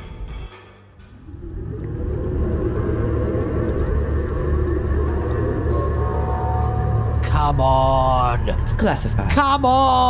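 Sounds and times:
steady low rumble: 1.0 - 10.0.

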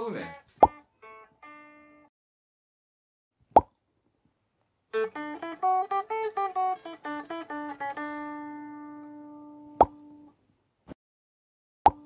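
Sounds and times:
plucked-string music: 0.0 - 2.1, 4.9 - 10.3
plop sound effect: 9.8 - 10.0.

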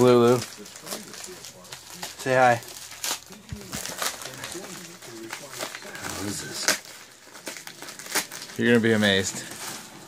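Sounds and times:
faint quiet voices: 0.0 - 9.6
light crinkling: 0.0 - 10.0.

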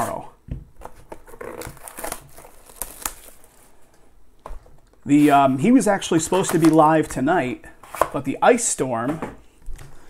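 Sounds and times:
packaging crinkling and rustling: 0.8 - 7.2.

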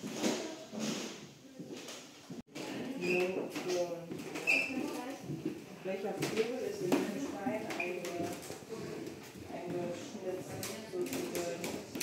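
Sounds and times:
people talking in a room: 0.0 - 12.0.

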